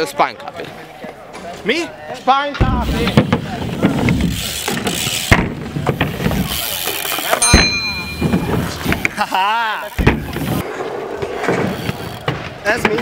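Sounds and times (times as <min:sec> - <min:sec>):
knocks from bike: 0:02.6 - 0:06.5, 0:07.5 - 0:09.2, 0:10.0 - 0:10.6
bike tyre rumble: 0:02.6 - 0:13.0
high ringing squeal: 0:07.4 - 0:08.8.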